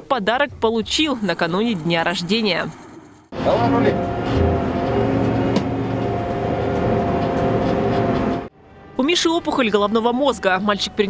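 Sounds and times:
armoured vehicle engine running: 0.4 - 8.5
steady whine: 0.8 - 8.5.

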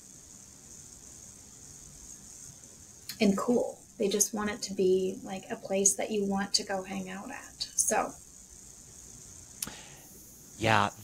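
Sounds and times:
faint microphone hiss: 0.0 - 11.0.

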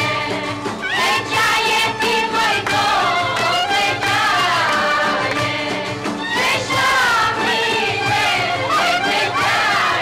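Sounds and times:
folk dance music: 0.0 - 10.0
group of voices singing: 0.0 - 10.0.

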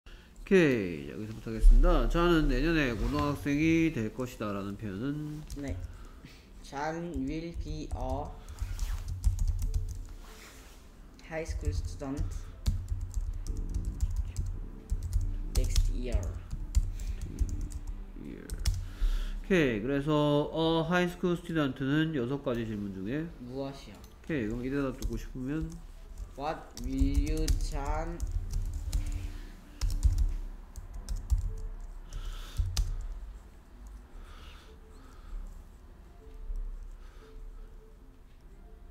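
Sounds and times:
computer keyboard typing: 7.1 - 10.1, 11.5 - 18.9, 24.4 - 34.0.

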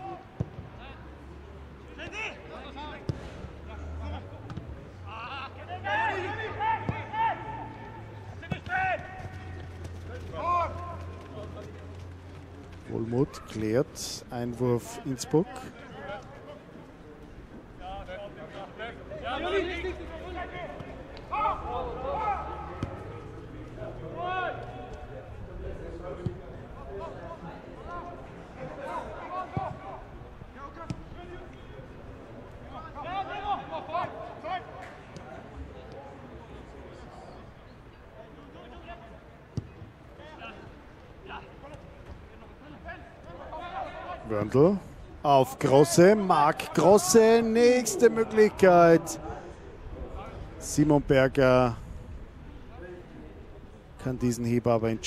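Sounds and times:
voices calling and shouting: 0.0 - 51.8.

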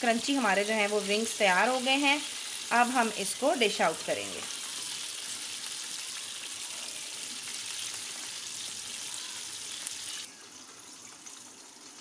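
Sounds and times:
hot oil sizzling: 0.0 - 12.0.

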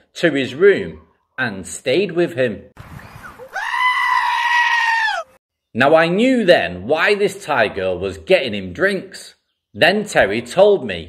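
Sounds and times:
goat screaming: 3.4 - 5.4.

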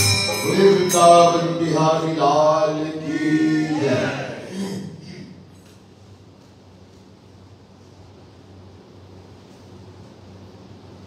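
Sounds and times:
man chanting: 0.0 - 5.2.

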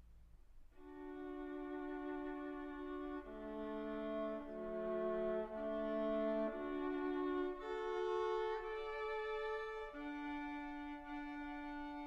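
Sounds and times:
bowed strings sustained chords: 0.8 - 12.0.

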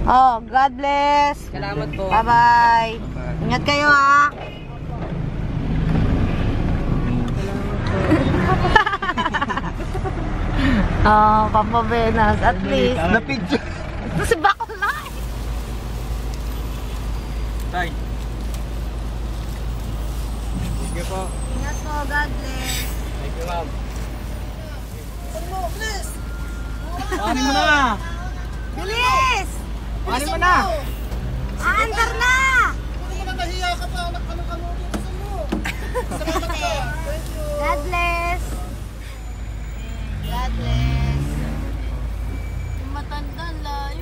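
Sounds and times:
idling traffic engines rumble: 0.0 - 44.0.

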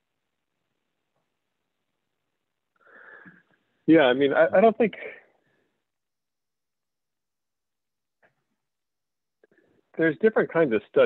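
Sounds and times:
intake of breath: 2.8 - 3.6.

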